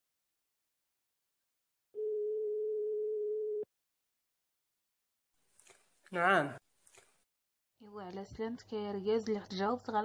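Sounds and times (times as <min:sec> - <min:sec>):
telephone ringback tone: 0:02.0 - 0:03.7.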